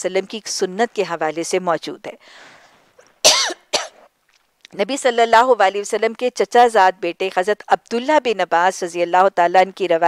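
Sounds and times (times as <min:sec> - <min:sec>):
faint breath in: 0:02.2 - 0:03.0
woman coughing: 0:03.2 - 0:04.0.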